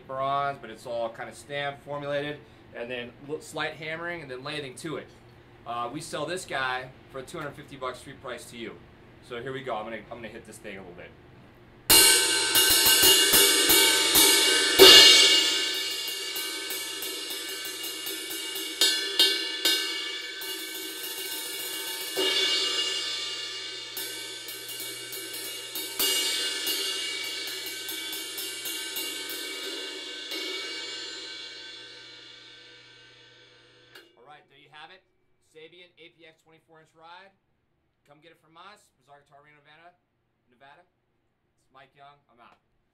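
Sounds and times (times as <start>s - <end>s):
cymbal crash: 11.9s - 34.1s
ride cymbal struck with drumsticks: 11.9s - 34.1s
ringing cymbal wash: 11.9s - 34.2s.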